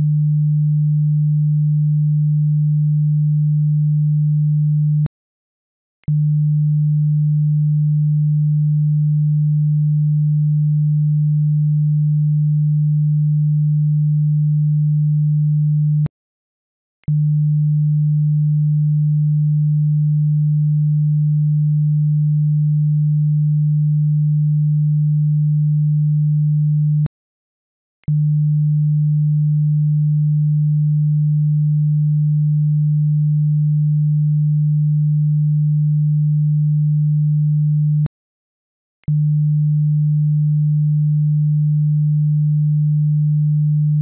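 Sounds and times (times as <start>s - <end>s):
low sine test tone: 0.0s - 5.1s, 6.0s - 16.1s, 17.0s - 27.1s, 28.0s - 38.1s, 39.0s - 44.0s.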